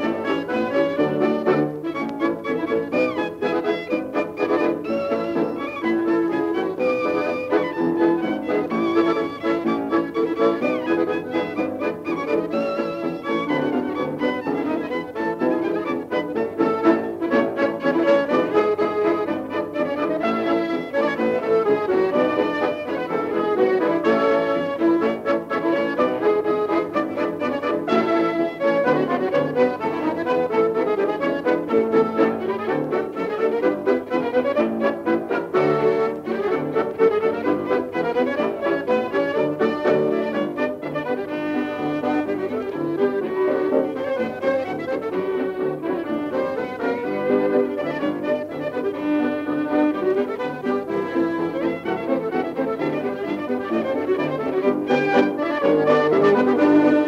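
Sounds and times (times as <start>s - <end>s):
polka by dance orchestra: 0.0s - 57.0s.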